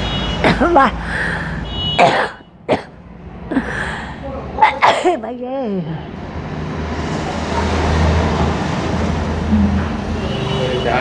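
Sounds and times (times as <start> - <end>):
steady background noise: 0.0 - 11.0
person clearing throat: 2.0 - 2.9.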